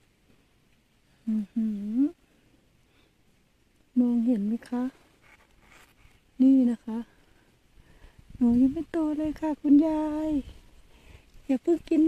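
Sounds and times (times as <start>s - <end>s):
woman speaking: 1.3s - 2.2s, 4.0s - 5.0s, 6.4s - 7.1s, 8.4s - 10.5s, 11.5s - 12.0s
leaves rustling against phone: 3.3s - 11.6s.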